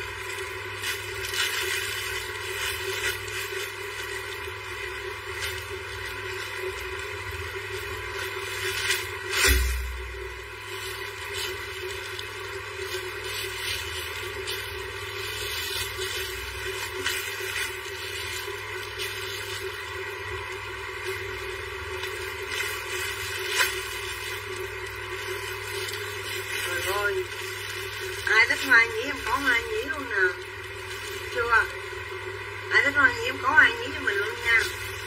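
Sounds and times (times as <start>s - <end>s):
plastic packaging crinkling: 0.0s - 35.0s
steady background hum: 0.0s - 35.0s.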